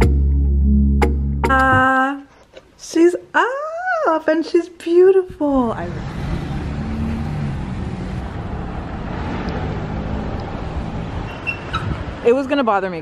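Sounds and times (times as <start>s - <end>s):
road traffic rumble: 5.2s - 13.0s.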